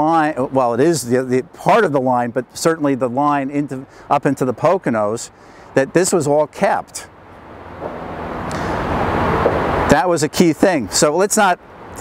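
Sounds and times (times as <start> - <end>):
vehicle approaching on road: 0.0 - 12.0.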